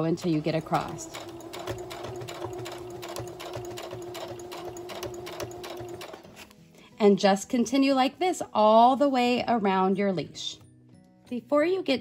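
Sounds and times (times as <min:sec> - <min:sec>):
sewing machine stitching: 0:00.0 - 0:06.5.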